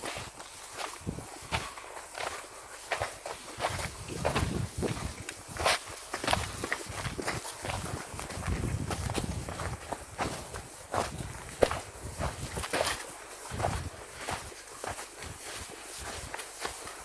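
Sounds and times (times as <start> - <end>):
footsteps on rough ground: 0.0 - 17.0.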